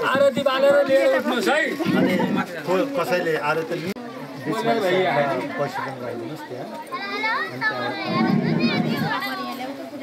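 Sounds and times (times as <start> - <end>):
people chattering: 0.0 - 10.0
children's voices: 5.3 - 10.0.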